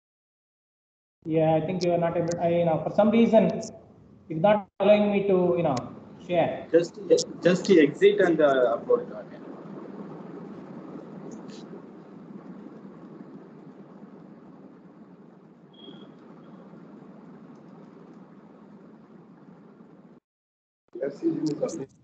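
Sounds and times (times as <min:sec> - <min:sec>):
faint room noise: 0:01.3 - 0:20.2, 0:21.0 - 0:22.0.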